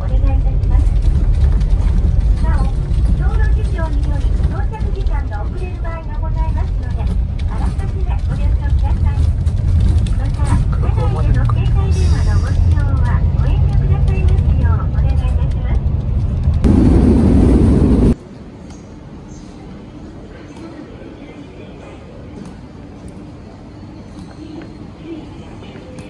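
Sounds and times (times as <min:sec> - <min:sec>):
recorded announcement voice: 0:00.0 - 0:15.9
bus engine and road rumble: 0:00.0 - 0:26.0
loud rushing noise: 0:16.2 - 0:18.2.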